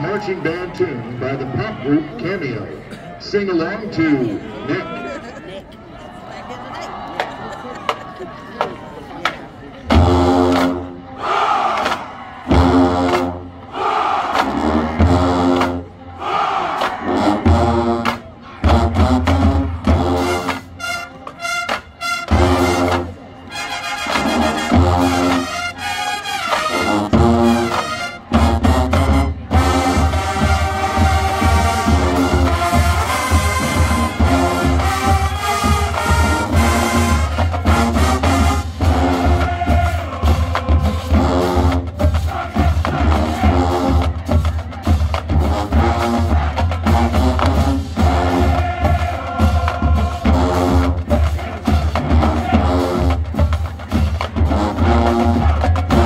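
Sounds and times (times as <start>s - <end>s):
marching band playing: 7.2s - 56.0s
low brass bass riff: 12.5s - 13.5s, 18.7s - 39.9s.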